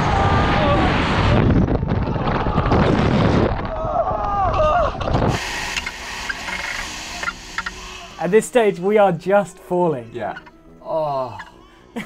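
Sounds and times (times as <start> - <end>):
wind buffeting microphone: 0.0 - 8.4.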